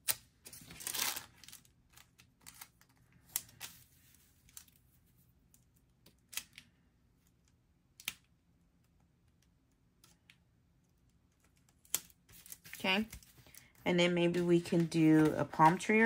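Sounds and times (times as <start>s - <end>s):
paper crinkling: 0.1s - 5.0s, 11.8s - 16.0s.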